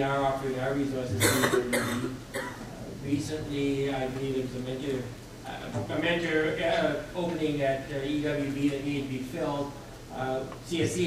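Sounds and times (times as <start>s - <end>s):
person coughing: 1.2s - 2.7s.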